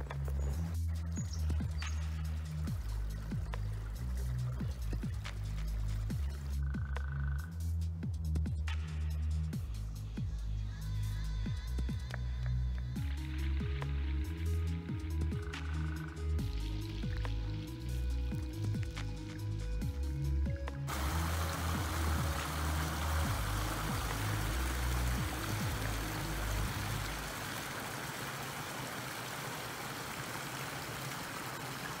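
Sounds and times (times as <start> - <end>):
flowing creek water: 0.0 - 7.1, 15.1 - 32.0
background music low notes: 0.0 - 27.5.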